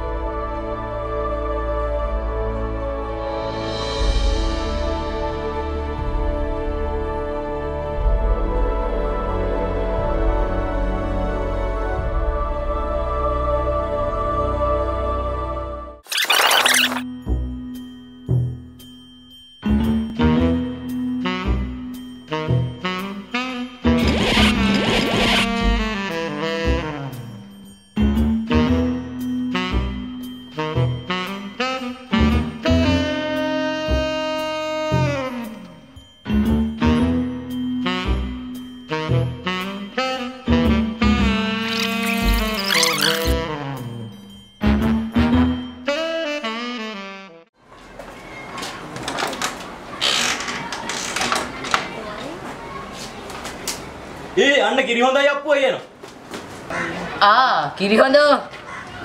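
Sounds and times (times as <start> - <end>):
music: 0.0 - 16.1, 17.0 - 47.6
scratchy rasping noise: 24.0 - 25.7, 41.6 - 43.4.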